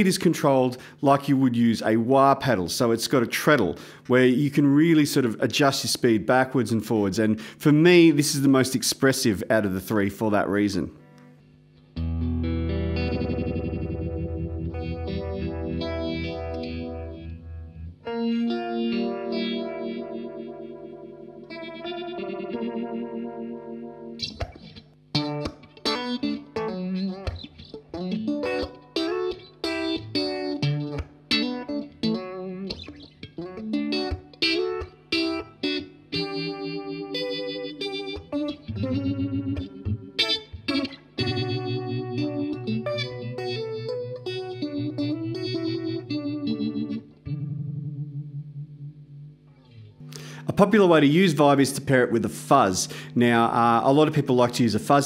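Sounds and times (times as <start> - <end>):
electric guitar with vibe effect: 0.0 - 55.0.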